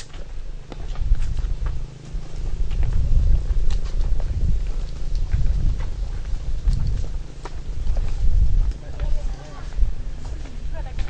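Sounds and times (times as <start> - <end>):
low rumble on microphone: 0.0 - 11.0.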